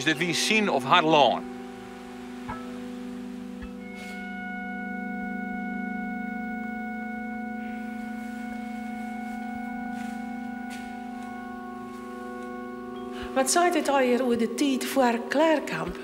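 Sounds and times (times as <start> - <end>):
slow sustained chord music: 0.0 - 16.0.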